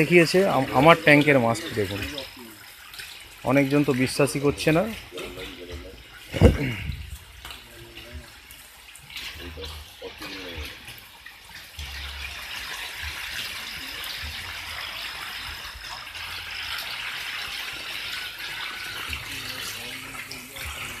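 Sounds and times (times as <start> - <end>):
fish splashing in water: 0.0 - 21.0
wind buffeting microphone: 6.4 - 7.2.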